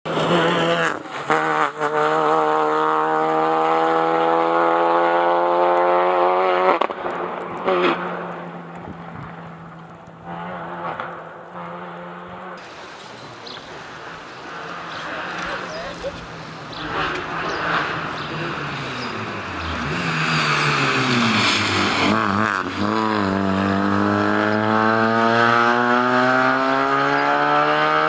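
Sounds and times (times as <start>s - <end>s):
car engine accelerating hard: 0.1s - 28.0s.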